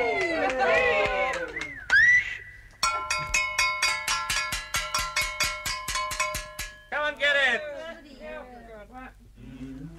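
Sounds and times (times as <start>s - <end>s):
bell struck rapidly: 2.8s - 7.1s.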